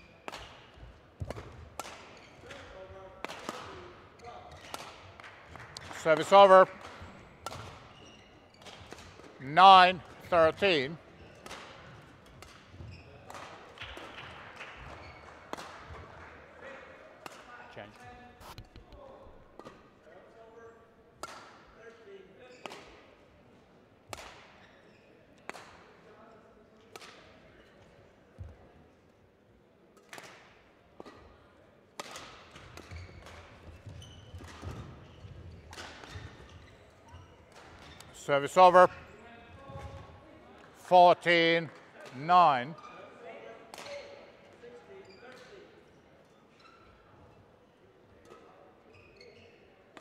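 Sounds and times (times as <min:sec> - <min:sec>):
shoes squeaking on court floor: 0:00.1 - 0:02.9, 0:05.6 - 0:13.4, 0:14.8 - 0:15.4, 0:32.6 - 0:40.1, 0:44.9 - 0:47.4, 0:48.3 - 0:49.8.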